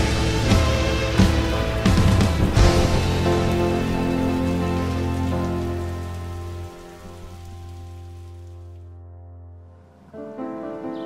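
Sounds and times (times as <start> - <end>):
rain hissing: 0.0 - 8.9
held music chords: 0.0 - 11.0.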